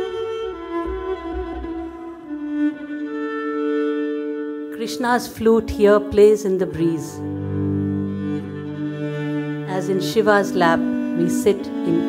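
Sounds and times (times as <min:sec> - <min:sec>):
bowed strings playing long notes: 0:00.0 - 0:12.0.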